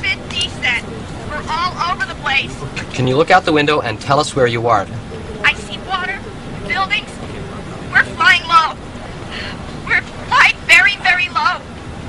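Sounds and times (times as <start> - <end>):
steady low rumble: 0.0 - 12.0
high-pitched spoken phrases: 7.9 - 8.8, 9.8 - 11.7.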